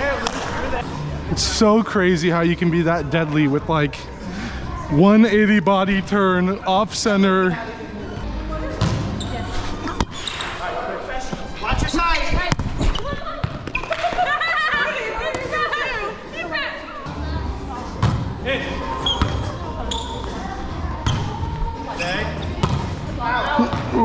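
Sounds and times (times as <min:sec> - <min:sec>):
players chatting: 0:00.0 - 0:24.0.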